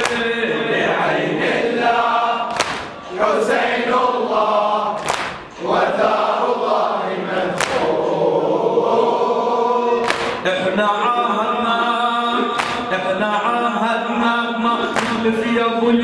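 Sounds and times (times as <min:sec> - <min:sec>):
hands slapping chests: 0:00.0 - 0:00.2, 0:02.5 - 0:03.0, 0:05.0 - 0:05.5, 0:07.6 - 0:07.9, 0:10.0 - 0:10.4, 0:12.6 - 0:12.9, 0:15.0 - 0:15.2
men chanting in unison: 0:00.0 - 0:16.0.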